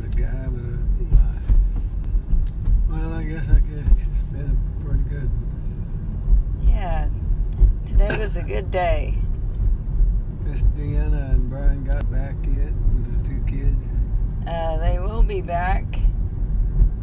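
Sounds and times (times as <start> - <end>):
car engine and tyres rumbling: 0.0 - 17.0
speech: 2.9 - 5.4, 10.5 - 13.9, 14.5 - 16.0.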